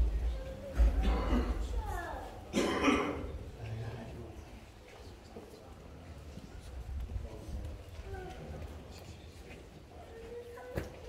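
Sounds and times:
man coughing: 0:01.0 - 0:01.7, 0:02.5 - 0:03.3.

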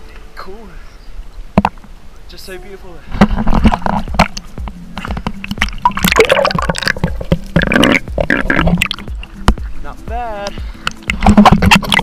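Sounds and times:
seawater sloshing and splashing: 0:10.6 - 0:12.0.

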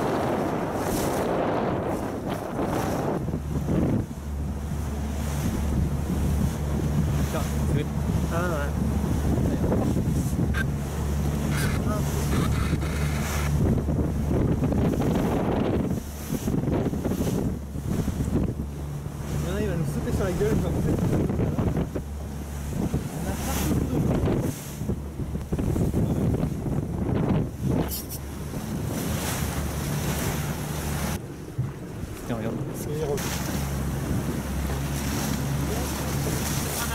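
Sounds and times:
motorboat engine running: 0:00.0 - 0:36.9
waves washing: 0:00.0 - 0:36.9
wind buffeting microphone: 0:00.0 - 0:36.9.

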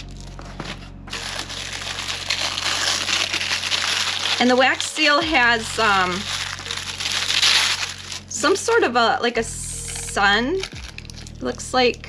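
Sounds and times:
tissue paper crinkling: 0:00.0 - 0:08.8, 0:09.8 - 0:11.5.

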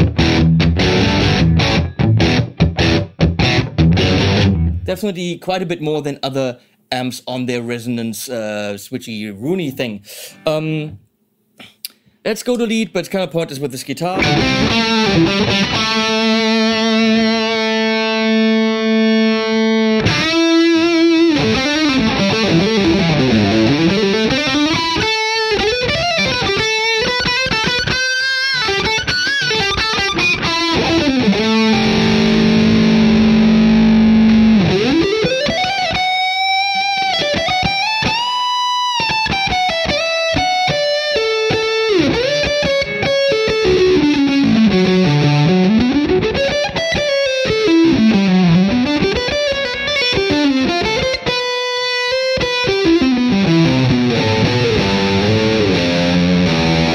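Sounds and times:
overdriven electric guitar: 0:00.0 - 0:04.9, 0:14.2 - 0:56.9.

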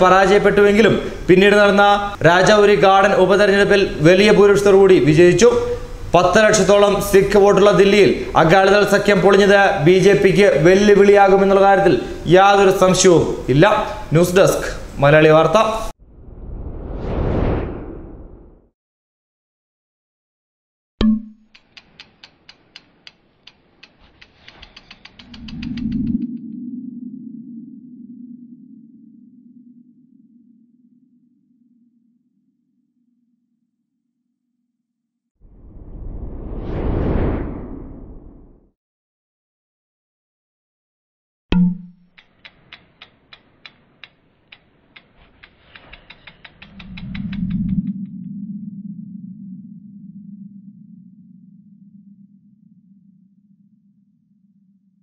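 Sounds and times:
low swelling rumble: 0:16.0 - 0:18.6, 0:35.4 - 0:38.6, 0:46.8 - 0:55.0
crisp ratchet-like ticks: 0:21.5 - 0:26.2, 0:42.0 - 0:47.9
steady low drone: 0:46.2 - 0:55.0.

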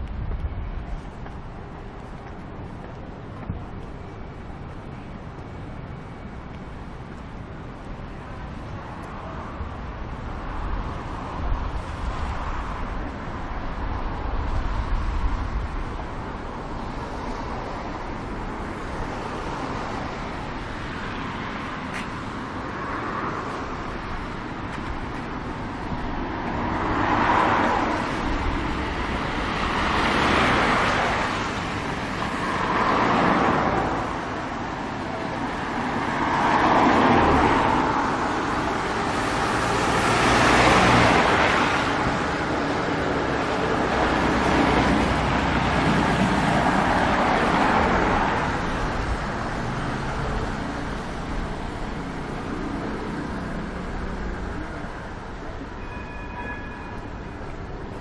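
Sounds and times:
steady traffic hum: 0:00.0 - 0:58.0
cars passing on wet road: 0:10.4 - 0:55.4.

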